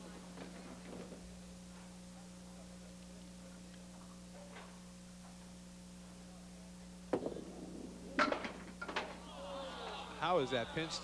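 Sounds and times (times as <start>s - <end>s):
bowling ball rolling on wooden lane: 7.1s - 9.2s
bowling pins crashing: 7.1s - 9.2s.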